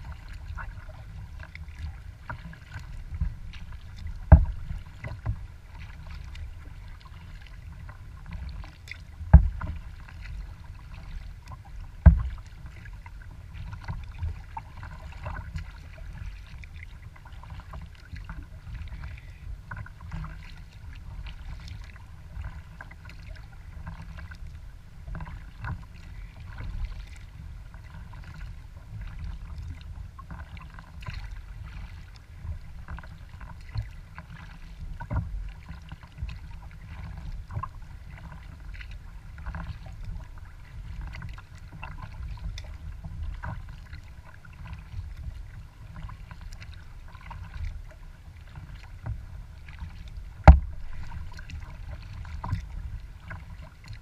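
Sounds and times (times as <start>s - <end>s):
water splashing against kayak: 0.0s - 54.0s
low rumble: 48.7s - 54.0s.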